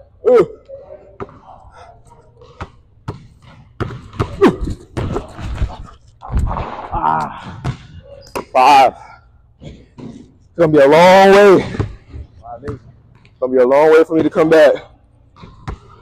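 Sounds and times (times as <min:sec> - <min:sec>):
basketball bouncing on hardwood: 0:02.6 - 0:04.4.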